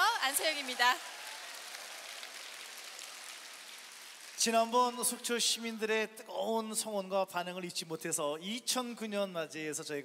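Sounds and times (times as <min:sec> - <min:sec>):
audience applause: 0:00.0 - 0:05.0.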